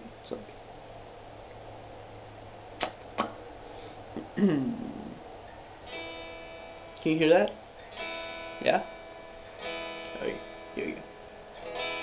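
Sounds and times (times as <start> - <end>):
electric guitar chord ringing: 5.8 - 12.0.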